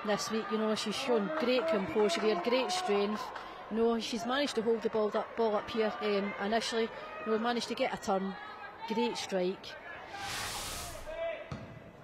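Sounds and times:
hissing swoosh: 10.1s - 11.1s.

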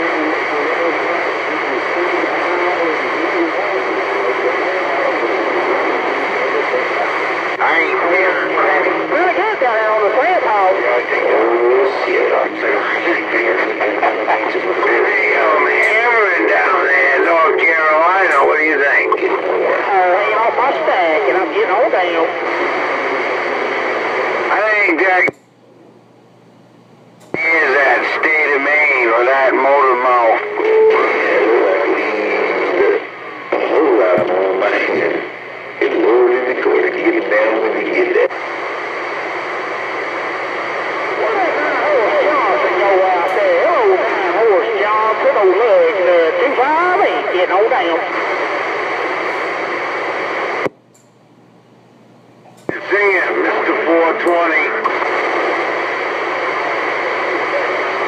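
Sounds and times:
radio static hiss: 0.0s - 25.4s, 27.2s - 50.8s, 52.6s - 58.0s
voices over radio speaker: 0.0s - 25.4s, 27.2s - 50.8s, 52.6s - 58.0s.

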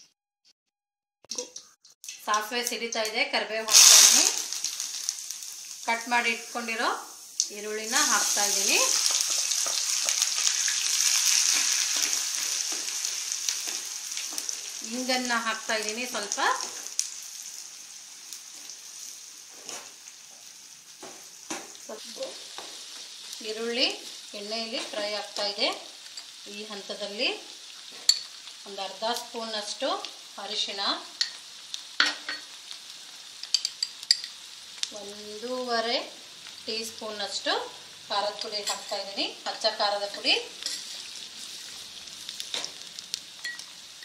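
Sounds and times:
onions sizzling in hot oil: 2.0s - 44.0s.

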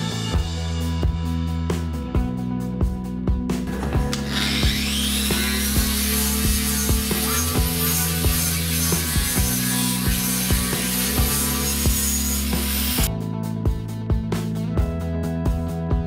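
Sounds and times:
background music with beat: 0.0s - 16.0s
hand grinder whining on steel: 4.1s - 13.1s.

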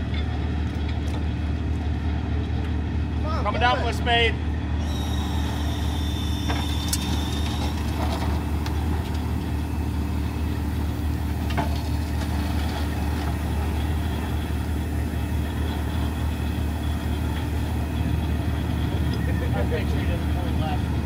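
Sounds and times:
diesel truck engine idling: 0.0s - 21.0s.

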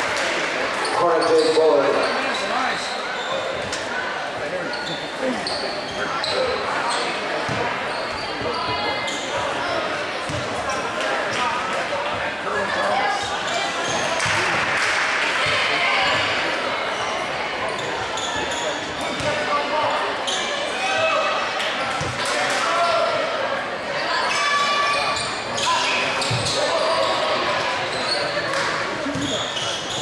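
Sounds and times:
echoing crowd chatter and shouts: 0.0s - 30.0s.

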